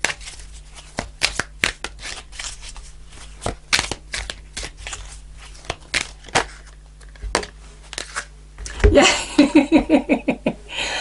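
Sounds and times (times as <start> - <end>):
cards being shuffled: 0.0 - 8.9.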